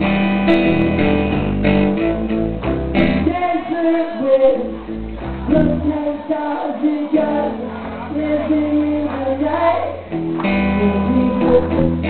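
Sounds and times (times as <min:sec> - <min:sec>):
strummed electric guitar: 0:00.0 - 0:12.0
person singing: 0:03.2 - 0:12.0.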